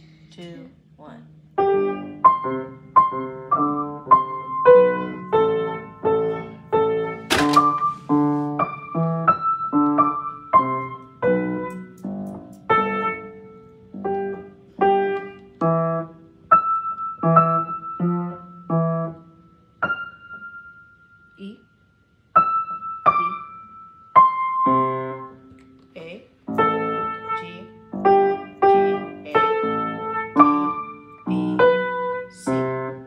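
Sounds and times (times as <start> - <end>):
upright piano played slowly: 0.0 - 21.5, 22.2 - 33.0.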